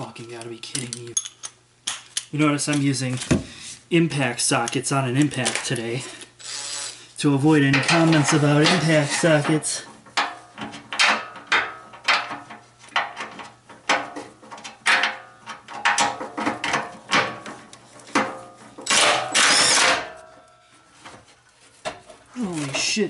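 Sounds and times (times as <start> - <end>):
impact driver bursts: 18.9 - 20.0.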